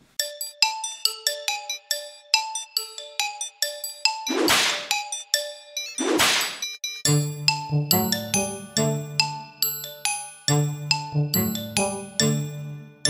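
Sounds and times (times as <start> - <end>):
bell-like background music: 0.2 - 13.0.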